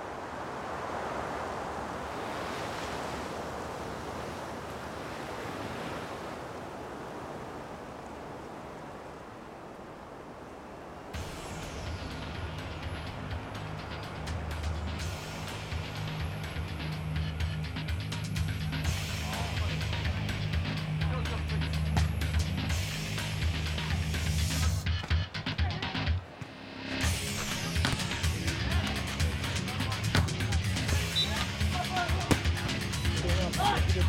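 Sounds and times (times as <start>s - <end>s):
ocean surf rushing: 0.0s - 16.7s
music with deep bass and beat: 11.2s - 26.2s, 27.0s - 34.0s.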